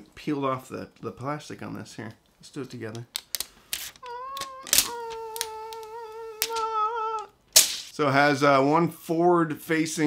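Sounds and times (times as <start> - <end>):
sharp plastic crackles: 3.0 - 6.8, 7.5 - 8.0
plastic film peeling off metal: 3.2 - 6.7.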